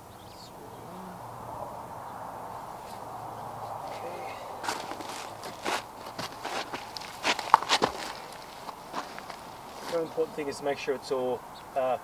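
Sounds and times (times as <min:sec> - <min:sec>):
footsteps on rocks: 0:03.6 - 0:10.5
scraping on plastic pond liner: 0:04.6 - 0:10.4.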